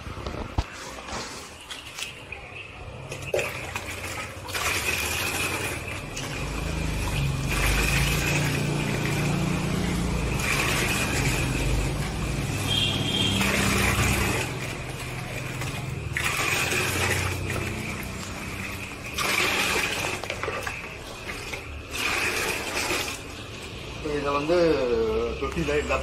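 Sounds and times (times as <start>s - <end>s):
water pouring and splashing: 0.3s - 26.0s.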